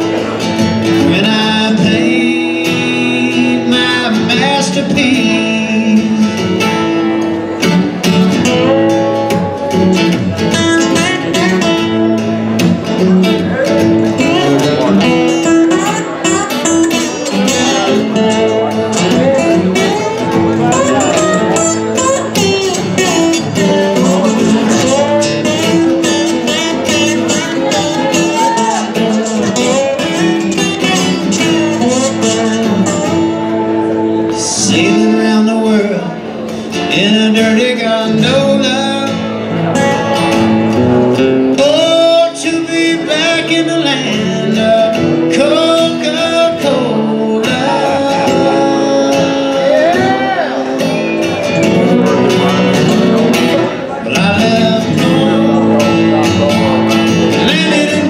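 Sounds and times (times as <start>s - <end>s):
acoustic guitar lead line: 0.0s - 58.0s
acoustic guitar strumming chords: 0.0s - 58.0s.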